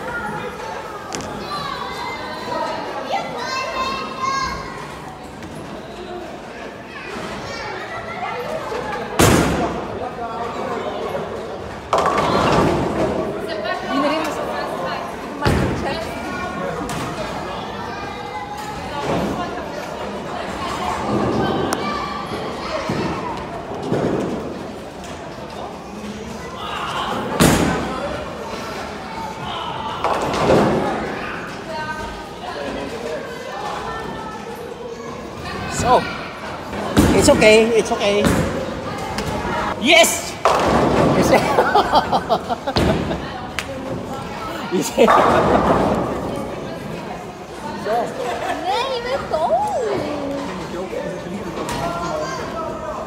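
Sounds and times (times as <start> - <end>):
busy indoor hall noise: 0.0 - 53.0.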